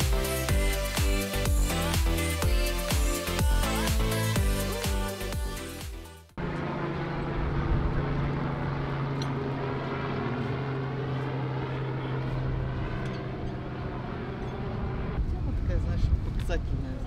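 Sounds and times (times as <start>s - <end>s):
engine drone: 0.0s - 17.0s.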